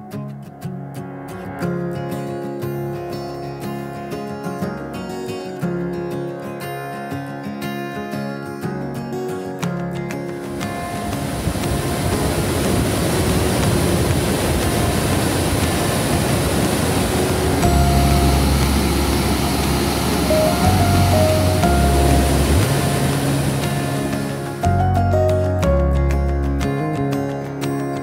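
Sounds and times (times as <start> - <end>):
background music: 8.3 - 28.0
rushing white water: 10.2 - 26.9.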